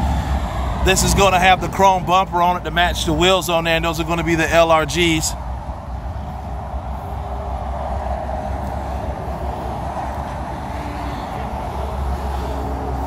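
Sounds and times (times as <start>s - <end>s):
vehicle rumble with hiss: 0.0s - 13.0s.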